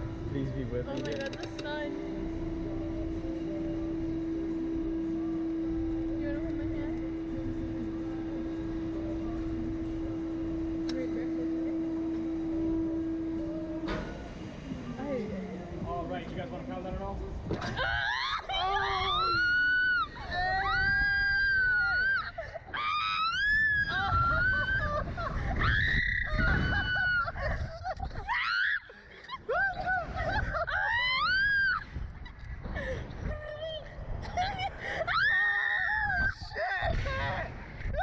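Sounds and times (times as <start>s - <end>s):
wind rumbling on microphone: 16.8s - 22.2s, 23.2s - 28.4s, 29.4s - 38.0s
people screaming: 17.6s - 27.4s, 28.1s - 31.9s, 35.1s - 38.0s.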